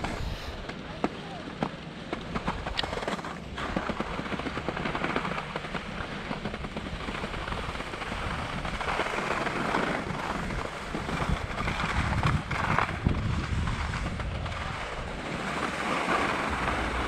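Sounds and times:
ski edges scraping snow: 0.0s - 0.8s, 2.3s - 17.0s
wind buffeting microphone: 0.0s - 1.0s, 2.2s - 17.0s.

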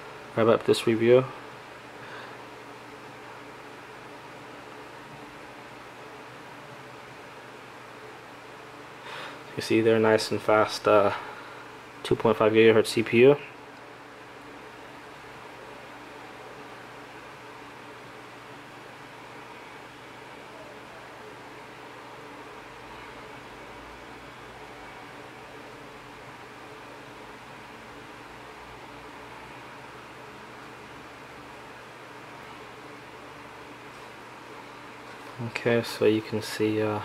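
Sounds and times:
faint low hum: 0.0s - 37.0s
steady background hiss: 0.0s - 37.0s.

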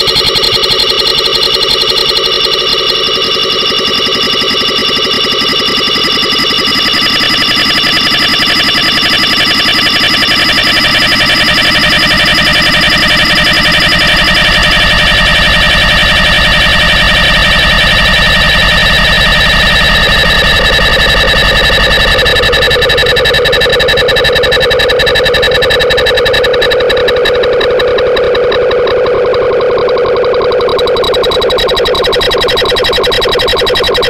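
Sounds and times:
electronic drone with fluttering pulse: 0.0s - 34.0s.

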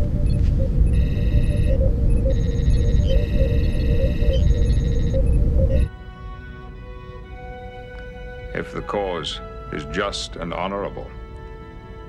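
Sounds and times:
electronic console beeps: 0.0s - 5.9s.

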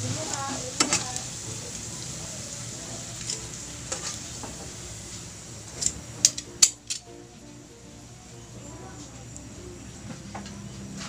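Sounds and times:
hot oil sizzling in a wok: 0.0s - 11.0s
metal tongs clicking against pan: 0.3s - 1.9s, 2.6s - 4.3s, 5.7s - 7.2s.

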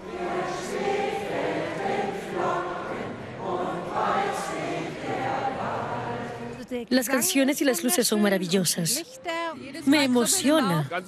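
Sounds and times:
crowd singing in chorus: 0.0s - 8.6s.

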